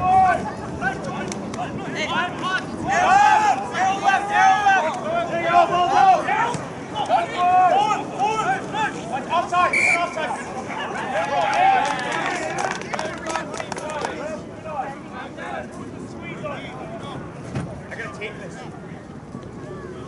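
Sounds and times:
men shouting: 2.9s - 6.5s.

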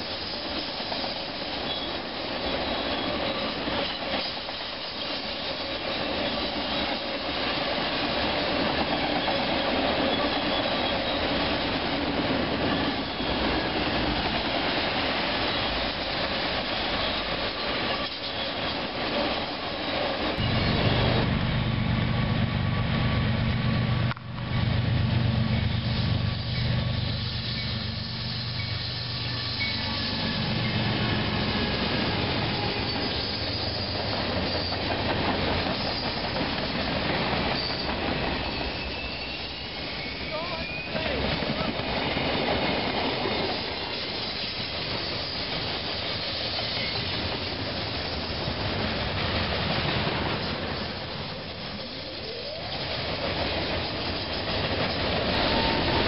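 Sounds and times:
diesel locomotive engine hum: 0.0s - 56.0s
freight cars rolling on rails: 0.0s - 56.0s.

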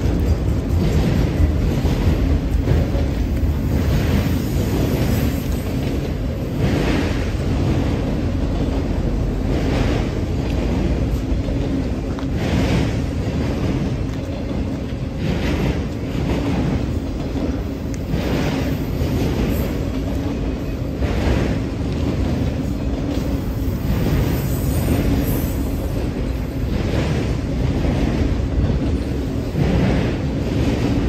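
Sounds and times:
train wheel clatter: 0.0s - 31.0s
train wheels rumbling on rail: 0.0s - 31.0s.

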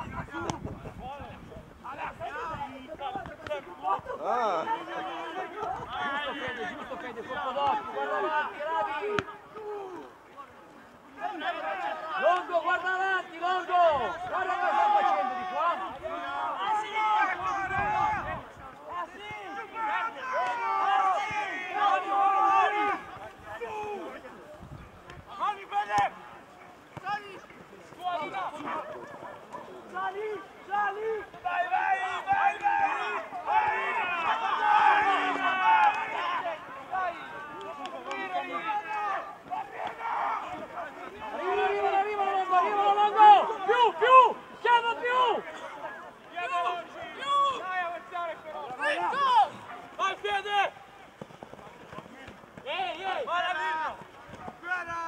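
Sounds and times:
voices shouting: 0.0s - 51.2s.

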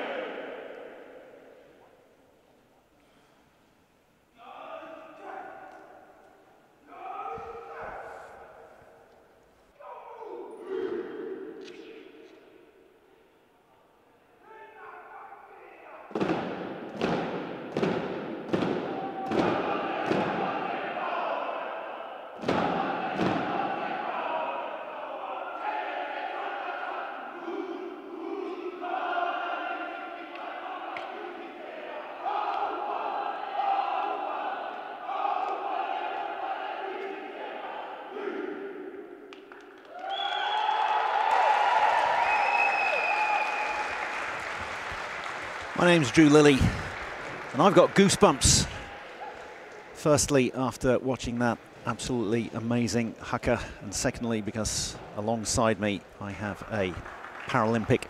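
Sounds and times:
group chanting and shouting: 0.0s - 2.2s, 4.3s - 40.1s, 45.8s - 50.4s
crowd noise: 0.0s - 3.0s, 14.7s - 39.8s, 40.9s - 58.0s
body slaps: 16.2s - 20.5s.

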